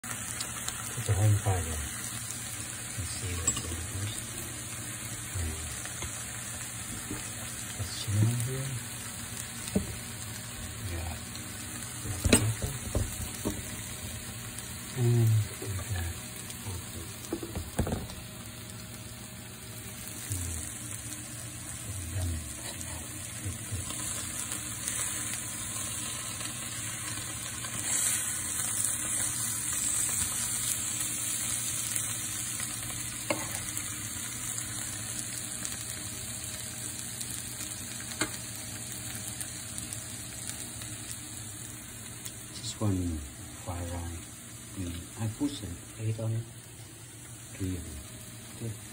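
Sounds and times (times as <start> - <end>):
potatoes sizzling in skillet: 0.0 - 48.9.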